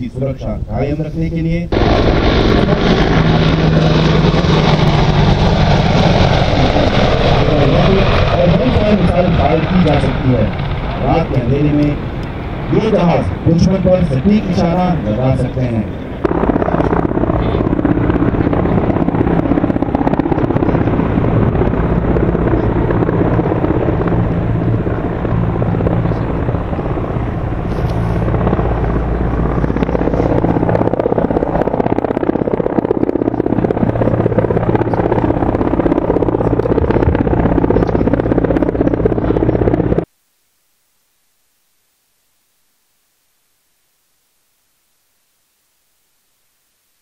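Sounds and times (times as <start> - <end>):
helicopter flying low: 0.0 - 40.1.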